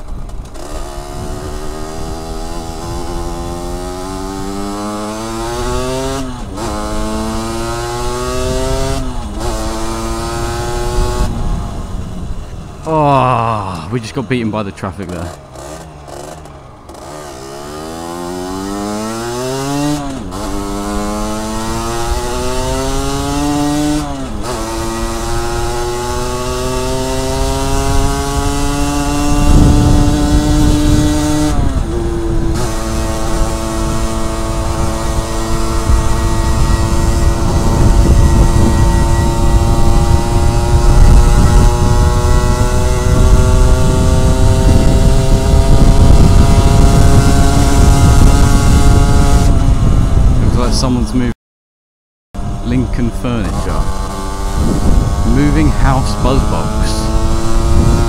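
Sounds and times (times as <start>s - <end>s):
wind noise on microphone: 0.0s - 12.8s, 16.9s - 51.3s, 52.4s - 58.0s
motorcycle engine accelerating: 0.0s - 51.3s, 52.4s - 58.0s.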